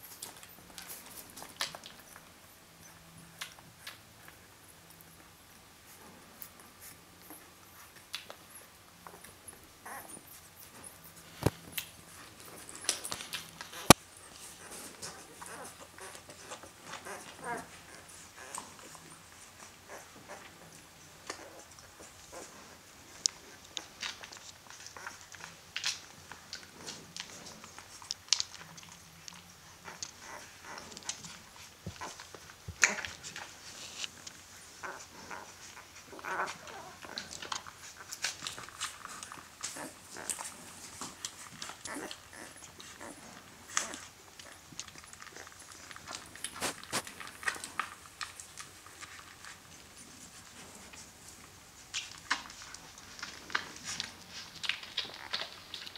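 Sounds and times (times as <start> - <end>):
puppies whimpering and squeaking: 5.8 - 25.5, 29.6 - 47.7.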